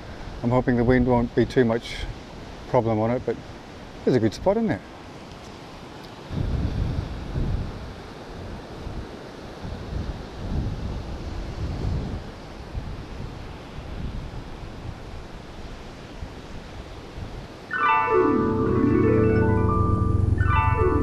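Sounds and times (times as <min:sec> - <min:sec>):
wind gusting on microphone: 0:05.2 - 0:21.0
music: 0:17.7 - 0:21.0.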